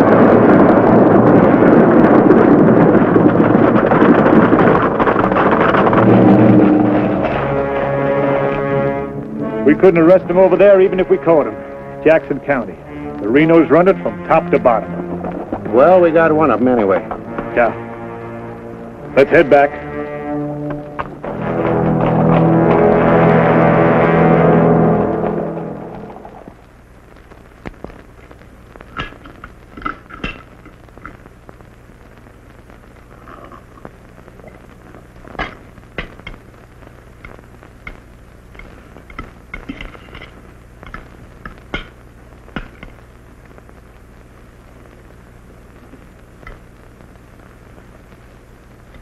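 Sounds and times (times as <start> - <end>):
low steady hum: 0.0 - 49.0
orchestral music with brass: 6.3 - 26.2.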